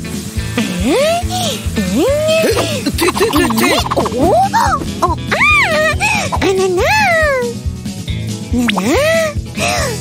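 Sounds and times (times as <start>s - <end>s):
light background music: 0.0s - 10.0s.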